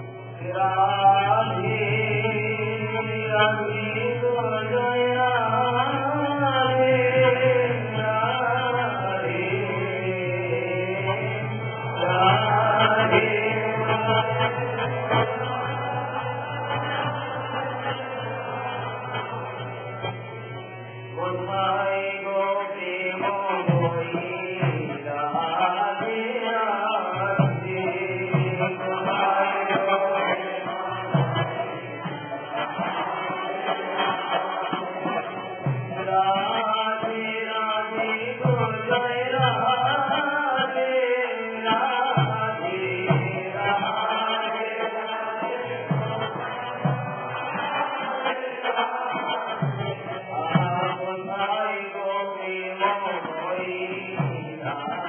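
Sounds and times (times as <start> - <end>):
muffled devotional chanting with music: 0.0 - 55.0.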